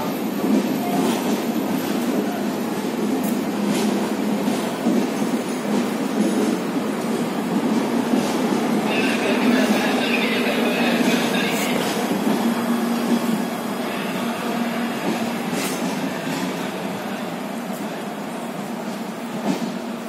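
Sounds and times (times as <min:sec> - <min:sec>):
train wheels rumbling on rails: 0:00.0 - 0:20.0.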